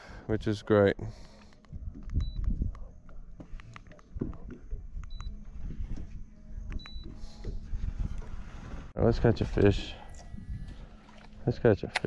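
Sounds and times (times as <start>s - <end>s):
wind on microphone: 1.6s - 11.1s.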